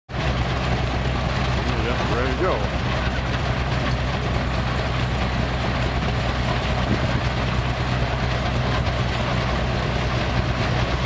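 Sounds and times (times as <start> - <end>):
threshing machine running: 0.1 - 11.0.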